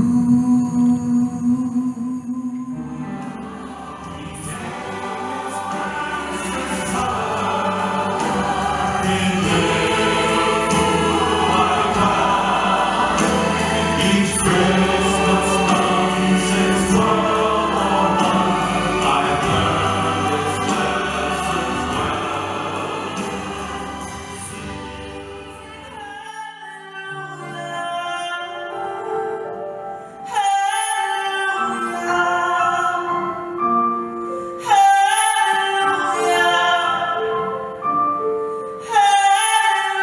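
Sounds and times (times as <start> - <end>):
female and male singers singing: 0.0 - 29.0
sustained instrumental accompaniment: 0.0 - 30.9.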